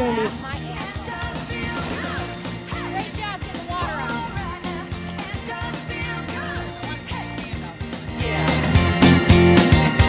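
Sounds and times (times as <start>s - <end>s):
pop-rock song: 0.0s - 10.0s.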